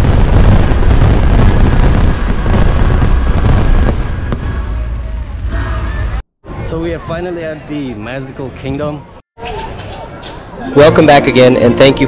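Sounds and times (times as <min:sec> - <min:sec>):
fireworks booming and crackling: 0:00.0 - 0:06.2
sharp firework crack: 0:00.0 - 0:06.2.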